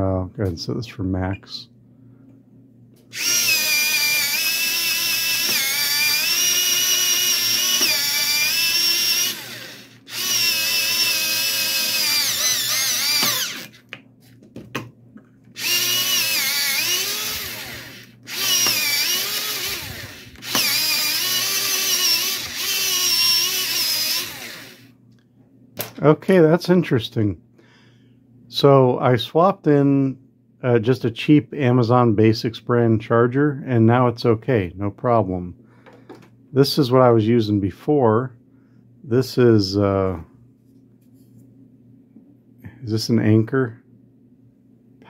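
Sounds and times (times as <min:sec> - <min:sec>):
electric pencil sharpener whining: 0:03.1 - 0:13.8, 0:15.6 - 0:24.9.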